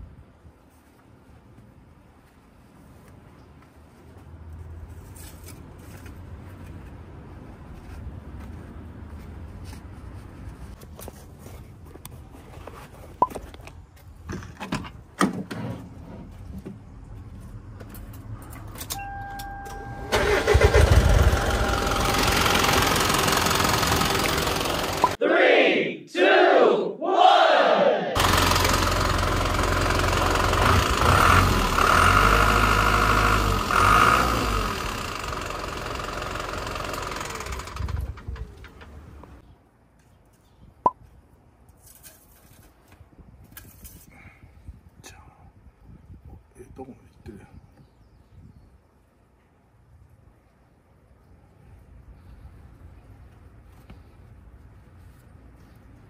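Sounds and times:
diesel truck engine running: 20.0s - 25.2s, 28.2s - 39.4s.

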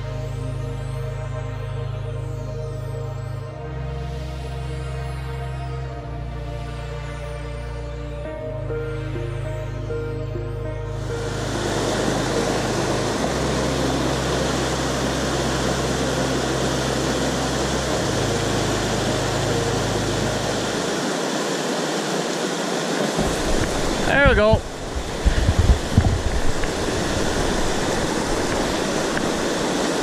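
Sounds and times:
ambient background music: 0.0s - 30.0s
low sustained music notes: 0.0s - 30.0s
river rapids rushing: 11.1s - 30.0s.

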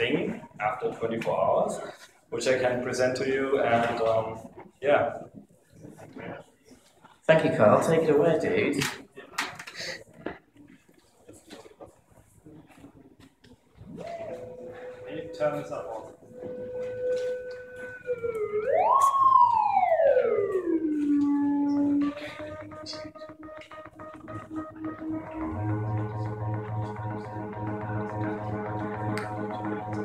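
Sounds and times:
synthesizer tone sweeping like a siren: 14.0s - 30.0s
low synthesizer drone: 14.2s - 30.0s.

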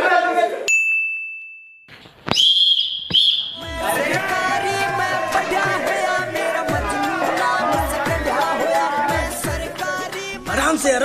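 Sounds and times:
shrill wavering whistle: 2.3s - 3.8s.

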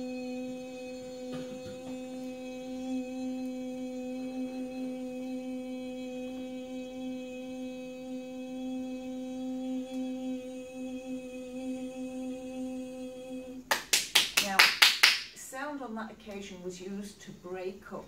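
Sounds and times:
woman singing a long tone: 0.0s - 8.3s.

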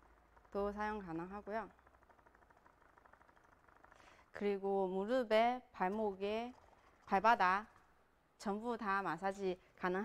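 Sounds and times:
percussion massager pulsing: 0.0s - 4.7s.

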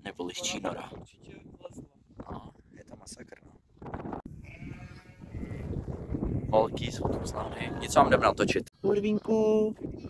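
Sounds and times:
sheep bleating: 4.4s - 6.6s, 8.7s - 10.0s.

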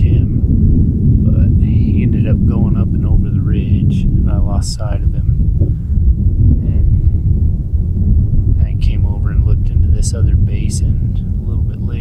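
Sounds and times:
man speaking: 0.0s - 0.4s, 1.3s - 5.4s, 6.6s - 7.0s, 8.6s - 12.0s
wind buffeting microphone: 0.0s - 12.0s.

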